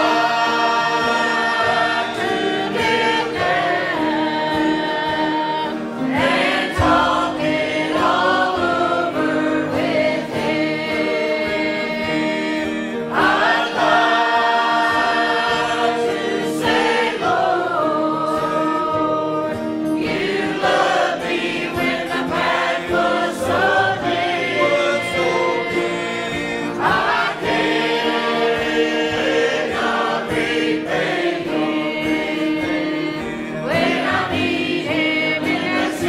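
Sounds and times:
group singing a hymn: 0:00.0 - 0:36.0.

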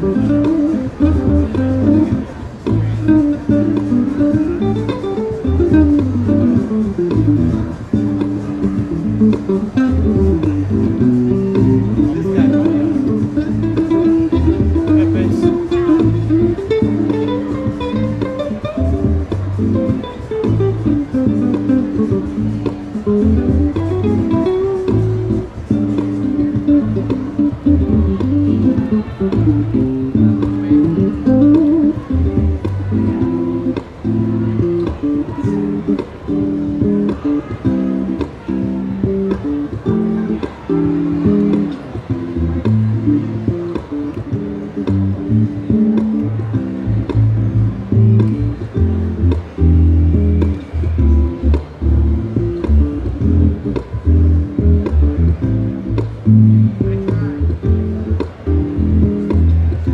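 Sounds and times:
bass guitar chords and melody: 0:00.0 - 0:59.9.

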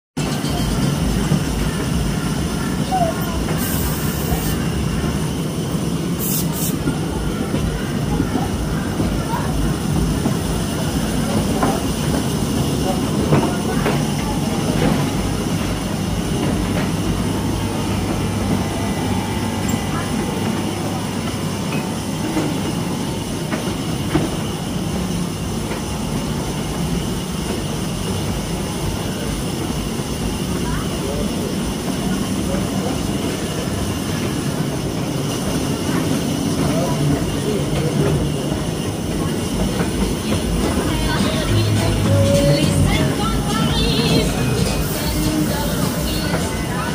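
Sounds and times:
ride train rumbling on track: 0:00.2 - 0:46.9.

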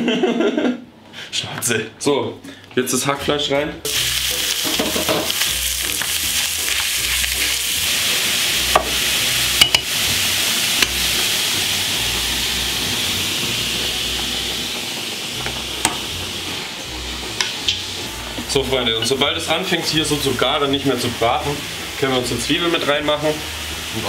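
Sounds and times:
meat sizzling in a pan: 0:03.9 - 0:24.0.

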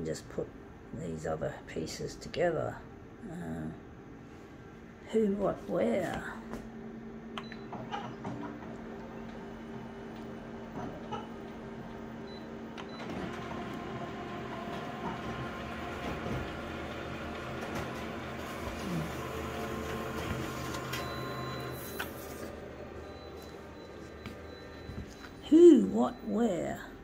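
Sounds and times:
copier humming and whirring: 0:00.0 - 0:27.0.

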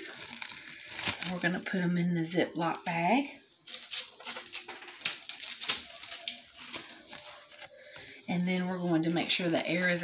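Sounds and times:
plastic bag crinkling: 0:00.0 - 0:02.1, 0:03.6 - 0:10.0.

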